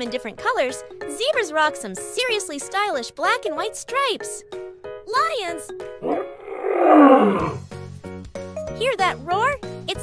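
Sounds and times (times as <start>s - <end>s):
background music: 0.0s - 10.0s
lion roaring: 6.0s - 7.7s.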